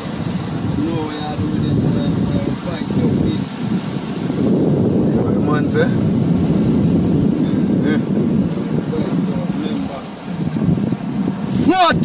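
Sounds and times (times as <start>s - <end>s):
surf breaking against rocks: 0.0s - 12.0s
wind rumble on microphone: 0.0s - 12.0s.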